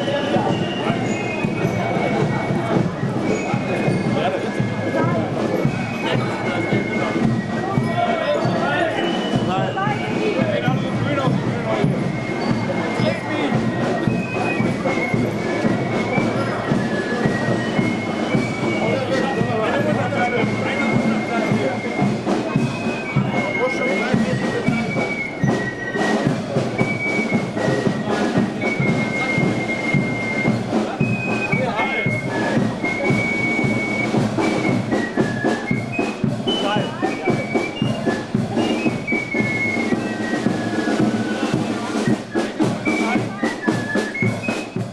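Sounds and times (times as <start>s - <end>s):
crowd chatter: 0.0s - 44.9s
parade band music: 0.0s - 44.9s.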